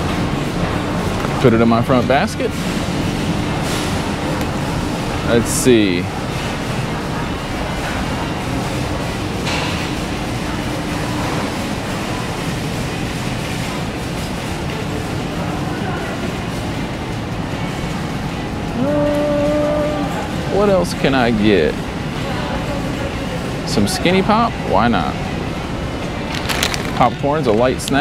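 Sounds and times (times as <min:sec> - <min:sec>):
store background hum: 0:00.0 - 0:28.0.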